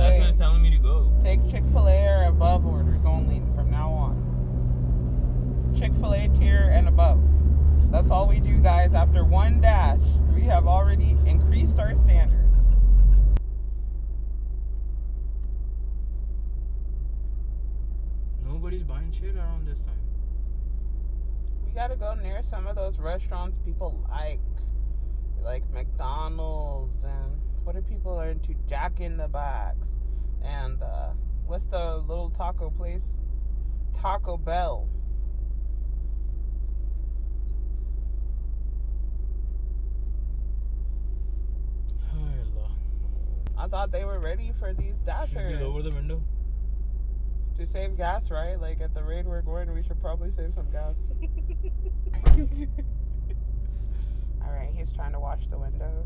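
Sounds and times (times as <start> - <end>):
car engine idling: 0.0 - 56.0.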